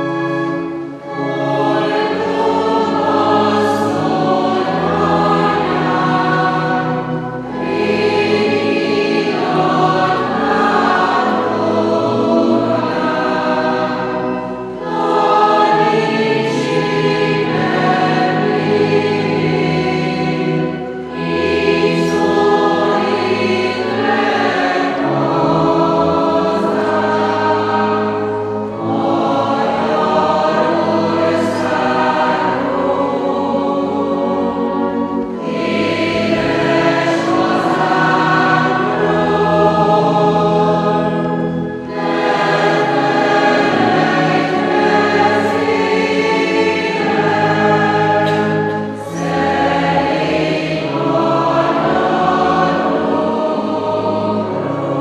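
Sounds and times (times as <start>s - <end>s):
congregation singing a hymn: 0.0s - 55.0s.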